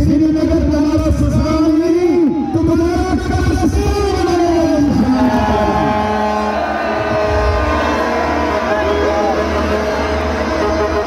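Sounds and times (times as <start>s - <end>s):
large crowd noise: 0.0s - 11.0s
plastic toy horns blowing: 7.3s - 11.0s.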